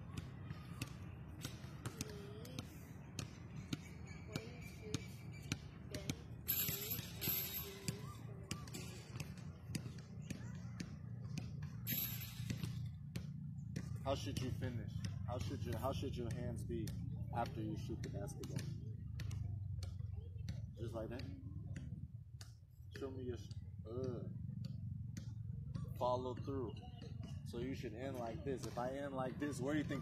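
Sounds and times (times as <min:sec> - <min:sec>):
faint voices: 0:00.0 - 0:12.2
basketballs bouncing on court: 0:00.0 - 0:30.0.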